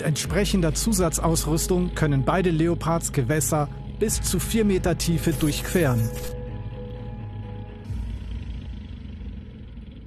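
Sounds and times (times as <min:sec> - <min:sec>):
tank diesel engine rumbling: 0:00.0 - 0:06.0.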